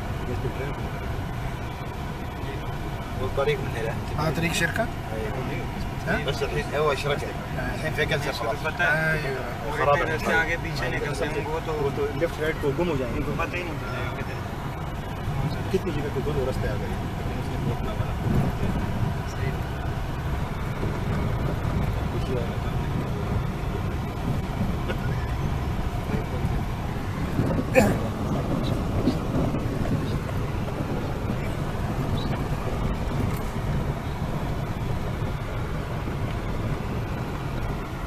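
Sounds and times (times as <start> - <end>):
vehicle rumbling over gravel: 0.0 - 38.0.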